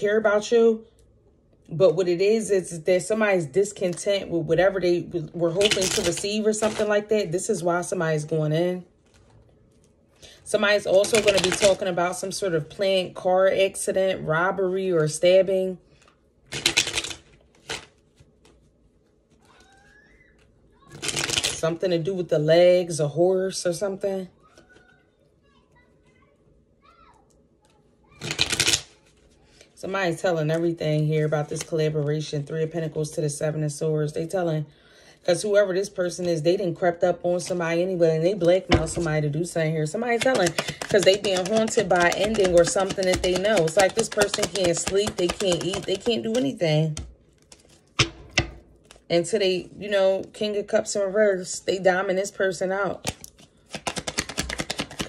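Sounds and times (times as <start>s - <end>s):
cards slapping while shuffled: 11.0s - 11.8s, 16.5s - 18.6s, 20.9s - 21.6s, 28.2s - 29.2s, 40.0s - 49.0s, 53.0s - 55.0s.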